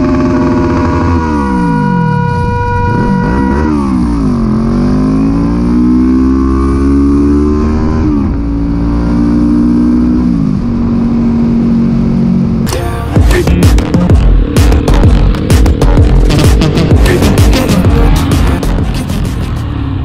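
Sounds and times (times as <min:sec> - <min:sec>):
steady high note: 0:00.0 - 0:04.6
motorcycle engine accelerating: 0:00.0 - 0:20.0
music: 0:12.7 - 0:19.8.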